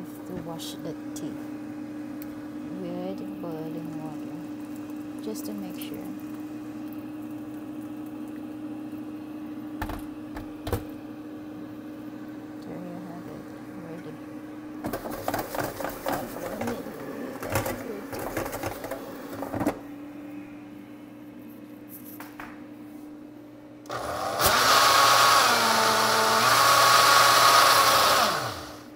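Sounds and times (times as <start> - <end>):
blender motor running: 23.9 - 28.9.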